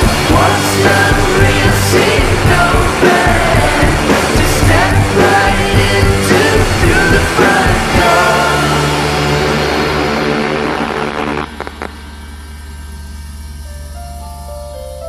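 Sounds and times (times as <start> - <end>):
rock band playing loudly: 0.0 - 11.8
low sustained drone: 0.0 - 15.0.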